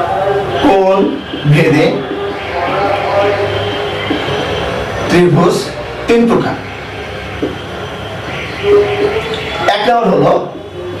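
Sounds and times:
marker scratching on whiteboard: 0:03.3 - 0:04.8, 0:07.3 - 0:07.6.

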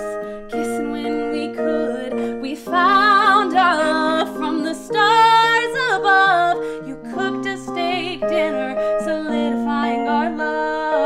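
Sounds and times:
electronic keyboard chords: 0:00.0 - 0:11.0
woman singing a ballad: 0:00.0 - 0:11.0.

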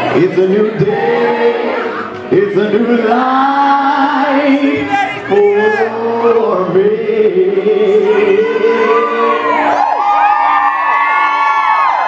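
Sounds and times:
karaoke backing track: 0:00.0 - 0:12.0
man singing a long note: 0:00.1 - 0:10.0.

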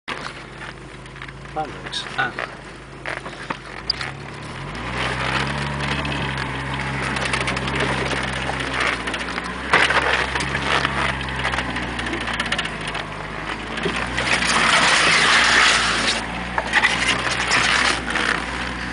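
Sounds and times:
body and loose gear rattling: 0:00.1 - 0:18.9
car engine pulling steadily: 0:00.1 - 0:18.9.

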